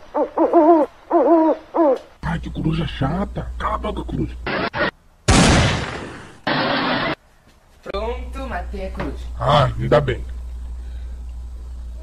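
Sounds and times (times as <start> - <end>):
owl hooting: 0.0 - 2.1.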